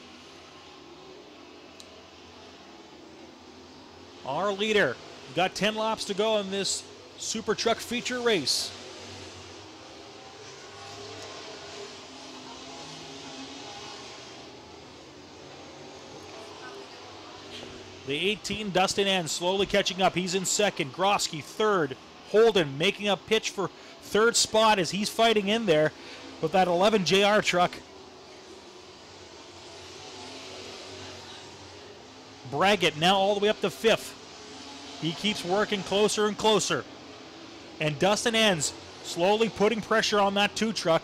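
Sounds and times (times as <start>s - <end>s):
distant racing truck engines: 0.0s - 41.0s.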